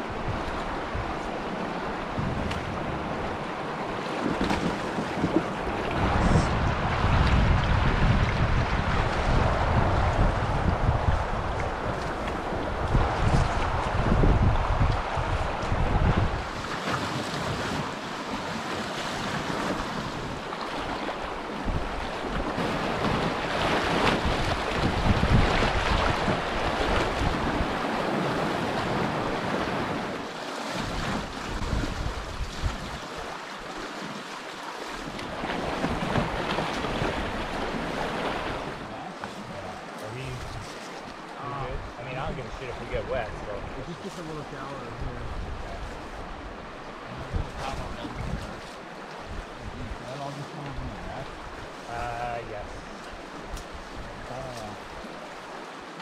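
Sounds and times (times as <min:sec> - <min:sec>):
wind buffeting microphone: 0:00.0 - 0:33.3, 0:34.9 - 0:55.8
river water rushing: 0:00.0 - 0:56.0.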